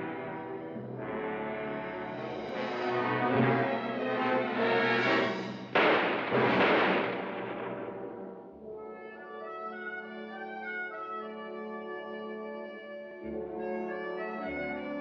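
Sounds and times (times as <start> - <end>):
orchestral music with loud brass: 0.0 - 15.0.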